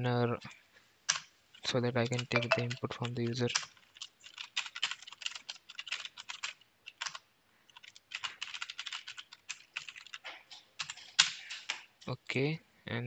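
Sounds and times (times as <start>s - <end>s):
typing on computer keyboard: 2.0s - 11.8s.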